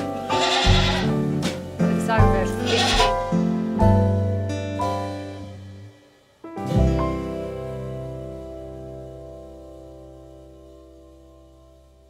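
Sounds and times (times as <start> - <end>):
background music with held notes: 0.0 - 12.0
goat bleating: 0.3 - 1.2, 2.6 - 3.2.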